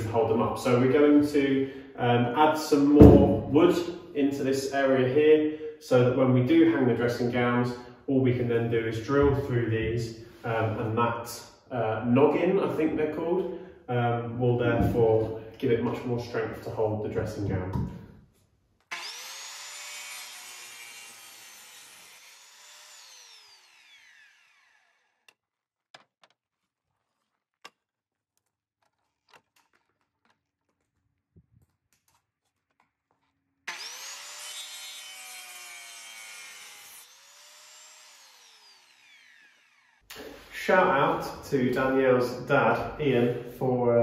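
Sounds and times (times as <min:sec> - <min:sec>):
mitre saw cutting timber: 0:18.8 - 0:25.4, 0:33.7 - 0:40.5.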